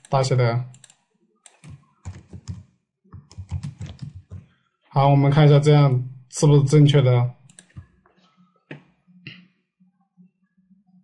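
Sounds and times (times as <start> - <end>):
typing on computer keyboard: 0.0 - 4.5, 7.4 - 7.9.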